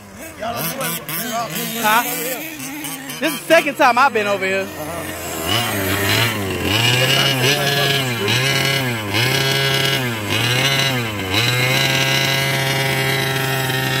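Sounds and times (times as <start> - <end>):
small two-stroke engine running: 0.0 - 14.0.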